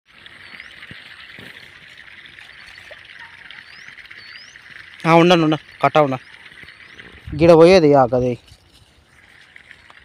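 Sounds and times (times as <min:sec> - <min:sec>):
water trickling in furrow: 0:00.1 - 0:10.0
hoe scraping wet soil: 0:00.2 - 0:02.4.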